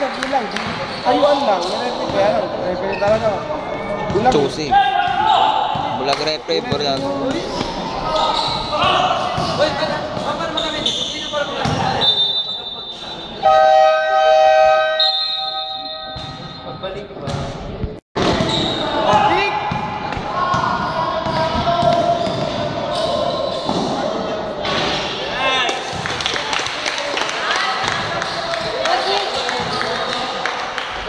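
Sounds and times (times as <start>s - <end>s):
players' voices echoing: 0.0s - 31.0s
basketball bouncing on court: 11.6s - 11.9s, 16.1s - 16.5s.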